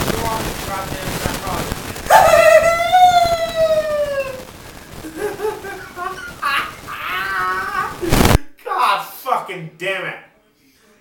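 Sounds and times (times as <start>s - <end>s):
man's high-pitched squealing laugh: 2.1s - 4.4s, 5.0s - 8.2s.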